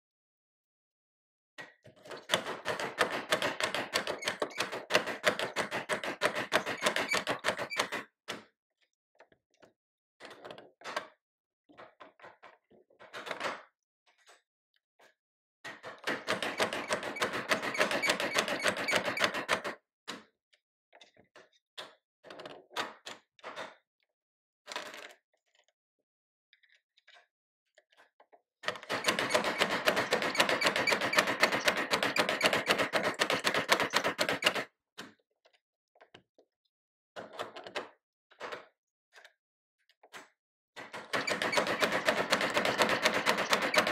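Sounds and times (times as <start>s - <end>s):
machine clicks and knocks: 2.1s - 8.0s, 16.0s - 19.8s, 28.7s - 34.7s, 40.8s - 43.9s.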